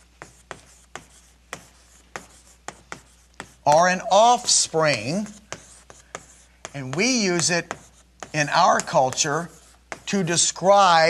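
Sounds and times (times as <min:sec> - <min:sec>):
writing tool tapping on board: 0:00.0 - 0:10.3.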